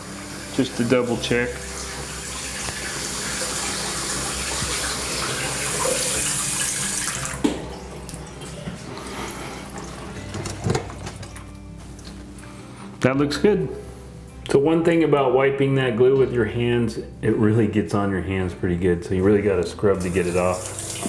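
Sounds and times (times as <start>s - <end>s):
faucet water rushing into sink: 0.0s - 8.9s, 20.1s - 21.0s
water trickling down drain: 0.3s - 10.3s.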